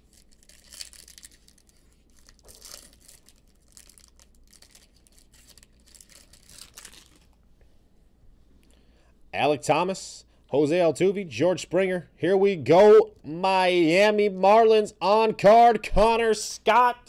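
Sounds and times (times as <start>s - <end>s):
wrapper tearing and crinkling: 0.0s - 7.4s.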